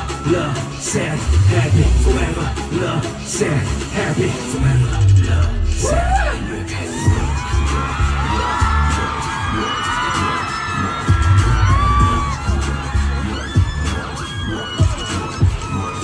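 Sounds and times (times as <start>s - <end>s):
crowd screaming and cheering: 0.0s - 16.0s
heavy pulsing bass beat: 0.0s - 16.0s
live pop music over loudspeakers: 0.0s - 16.0s.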